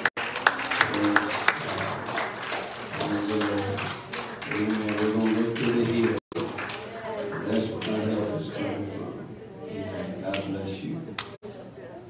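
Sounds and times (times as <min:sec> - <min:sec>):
hands clapping in rhythm: 0:00.0 - 0:06.9, 0:11.2 - 0:11.4.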